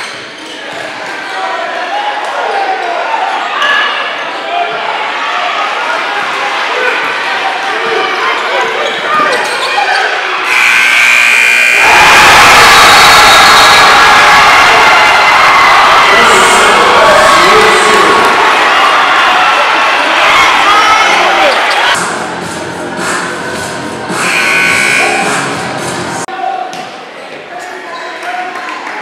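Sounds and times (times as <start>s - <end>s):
crowd chatter: 0.0s - 12.0s, 13.2s - 24.3s
crowd cheering and yelling: 0.8s - 22.4s
scoreboard buzzer: 10.4s - 13.6s, 24.2s - 25.5s.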